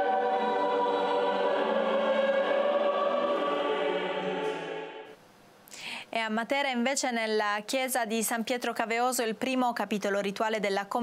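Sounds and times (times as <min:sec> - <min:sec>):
choir singing: 0:00.0 - 0:05.2
string orchestra chords: 0:00.0 - 0:05.2.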